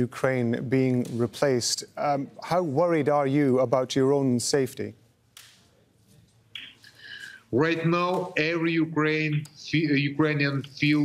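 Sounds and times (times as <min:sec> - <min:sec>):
breath: 0:06.8 - 0:07.5.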